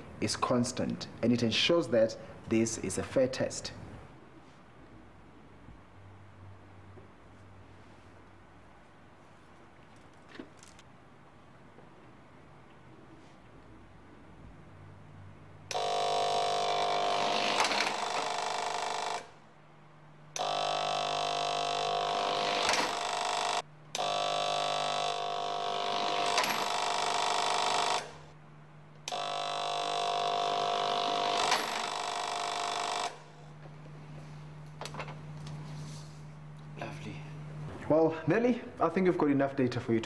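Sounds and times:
faint steady hum: 0:00.0 - 0:40.0
ticker-tape timer buzzing: 0:15.7 - 0:19.3, 0:20.4 - 0:28.2, 0:29.1 - 0:33.2.

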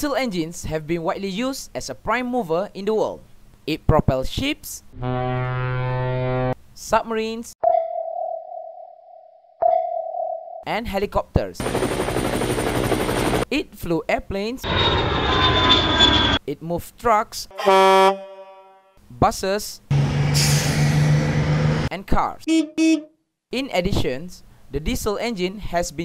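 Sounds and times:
sonar ping: 0:07.6 - 0:10.6
bus engine droning: 0:19.9 - 0:21.9
air brakes hissing: 0:20.3 - 0:21.3.

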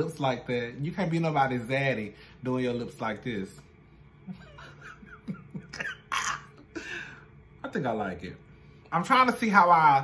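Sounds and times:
man laughing softly: 0:04.2 - 0:07.2.

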